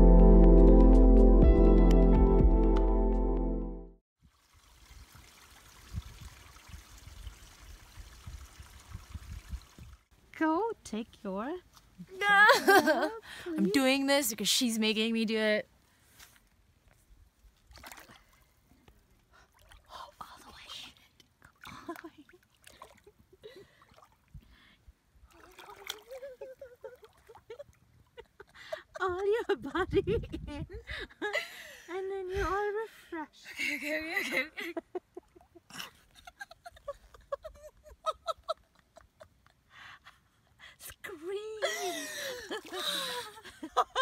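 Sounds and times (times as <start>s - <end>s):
water splashing and trickling: 4.2s - 15.3s, 16.4s - 28.5s, 41.6s - 43.7s
faint flowing stream: 4.2s - 29.5s, 31.2s - 44.0s
sharp water splash: 17.6s - 18.4s, 25.3s - 26.2s
wind thumps on microphone: 29.6s - 30.9s.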